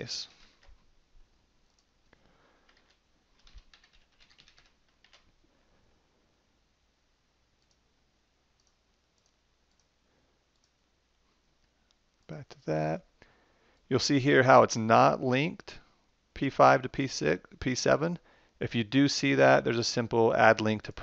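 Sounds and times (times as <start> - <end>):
faint clicks: 1.7 - 3.9, 7.6 - 7.8, 8.6 - 9.9, 10.5 - 10.8
computer keyboard typing: 2.6 - 5.3.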